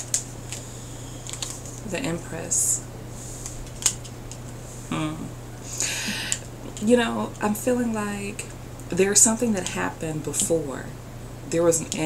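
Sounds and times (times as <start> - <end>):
steady low hum: 0.0 - 12.0
person speaking: 1.8 - 2.8, 4.9 - 12.0.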